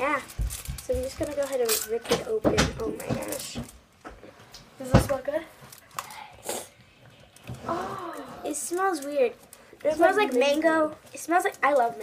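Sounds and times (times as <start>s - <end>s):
wrapper rustle: 0.0s - 4.0s, 4.8s - 12.0s.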